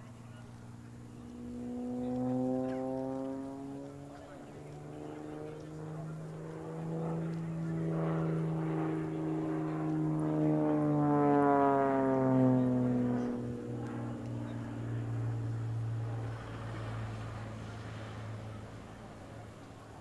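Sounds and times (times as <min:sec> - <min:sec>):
propeller plane engine: 0:00.0 - 0:20.0.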